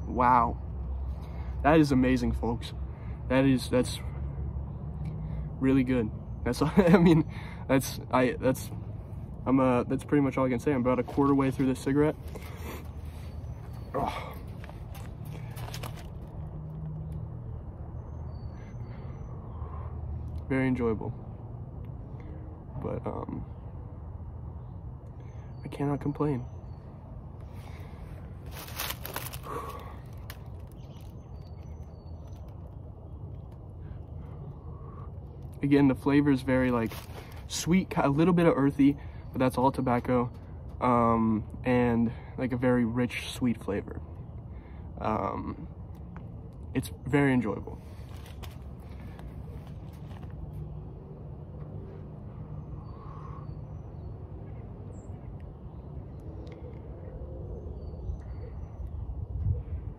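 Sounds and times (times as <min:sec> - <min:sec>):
low outdoor rumble: 0:00.0 - 0:59.9.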